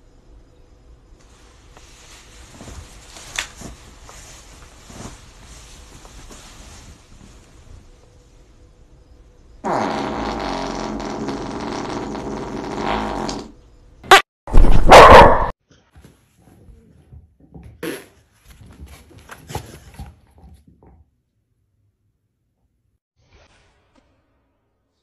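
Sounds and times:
dog farting: 9.6 - 14.2.

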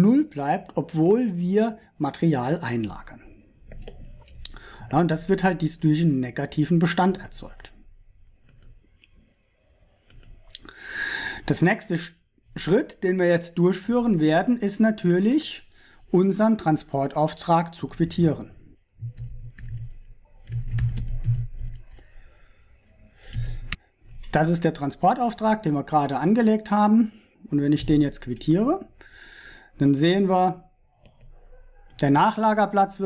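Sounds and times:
computer mouse clicks: 8.4 - 9.1, 10.0 - 10.6, 19.0 - 22.1, 23.2 - 24.3.

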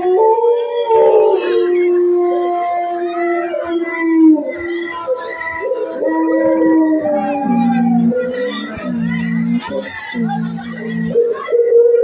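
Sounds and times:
dogs howling: 0.0 - 12.0.

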